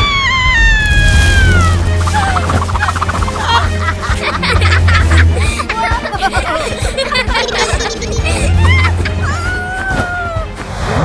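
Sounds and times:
woman screaming: 0.0 - 2.5
background music with bass: 0.8 - 11.0
woman laughing: 2.1 - 9.7.

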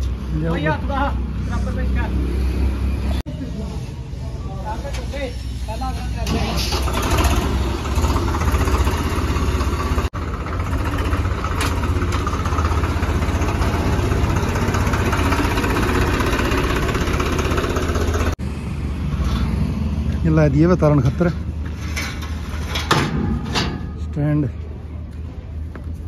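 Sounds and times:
tractor diesel engine running: 6.3 - 18.4.

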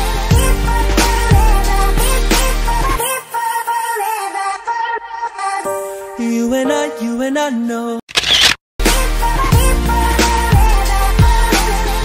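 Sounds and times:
music with deep bass: 0.0 - 3.0, 8.8 - 12.0
camera shutter click and whir: 8.1 - 8.6
intro music with stepping melody: 8.8 - 12.0.

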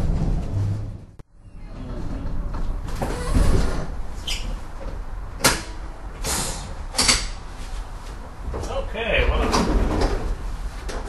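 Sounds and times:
streetcar low rumble: 0.0 - 11.0.

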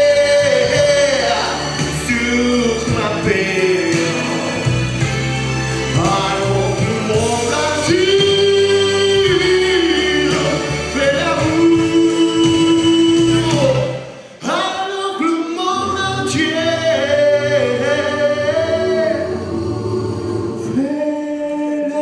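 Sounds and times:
recorded backing track: 0.0 - 22.0
man singing long notes: 6.0 - 19.5.

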